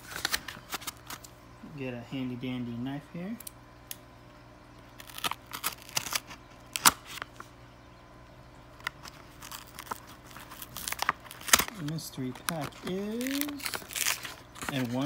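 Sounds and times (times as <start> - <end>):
paper envelope scratching and tearing: 5.0 - 7.3, 9.0 - 15.0
sharp paper crackles: 5.0 - 7.4, 8.8 - 15.0.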